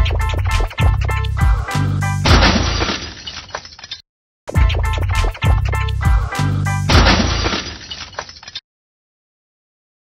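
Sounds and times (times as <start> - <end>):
glass shattering: 2.2 - 4.0, 6.9 - 8.6.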